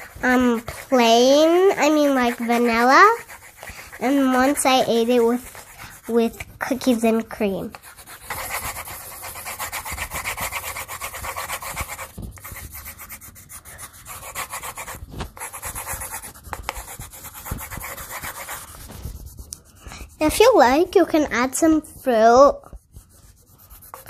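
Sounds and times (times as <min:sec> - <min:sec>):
pencils shading on paper: 0:00.0 - 0:24.0.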